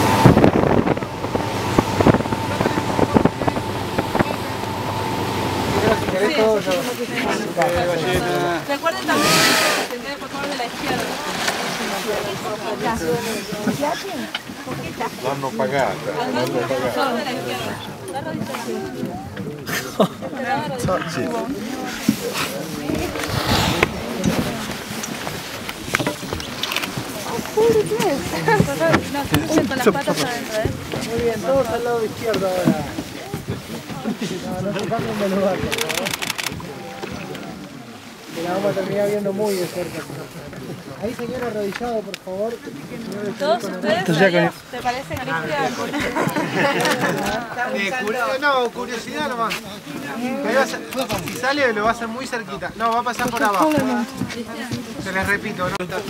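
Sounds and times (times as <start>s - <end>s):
wind on microphone: 0.0s - 6.3s, 22.8s - 29.7s
boat engine running: 0.0s - 13.8s
water washing around boat: 0.0s - 56.0s
wind: 0.0s - 56.0s.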